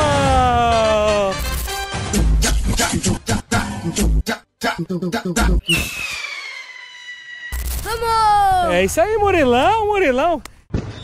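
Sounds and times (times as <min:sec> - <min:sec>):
loud shout: 0:00.0 - 0:01.3
high tone gliding down: 0:05.6 - 0:08.6.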